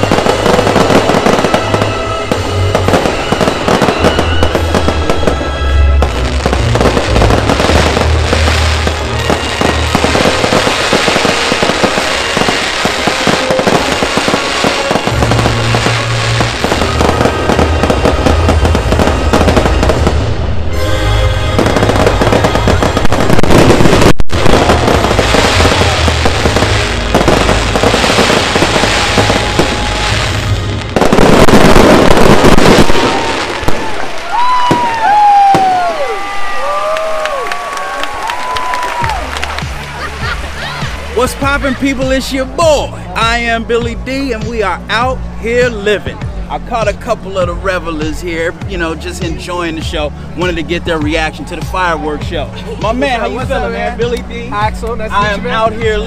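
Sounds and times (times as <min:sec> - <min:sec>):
music with steady bass line: 0:00.0 - 0:33.5, 0:39.0 - 0:56.0
fireworks bursting and crackling: 0:00.0 - 0:56.0.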